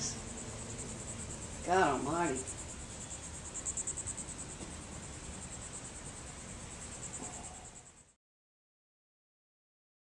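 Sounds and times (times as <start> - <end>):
insects trilling: 0.0 - 8.2.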